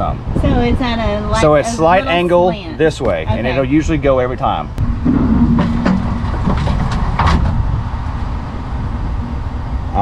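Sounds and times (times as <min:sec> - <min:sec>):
truck engine low rumble: 0:00.0 - 0:10.0.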